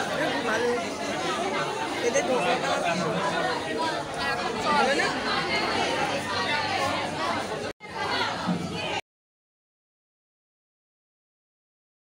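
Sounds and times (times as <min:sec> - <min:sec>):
people chattering: 0:00.0 - 0:09.0.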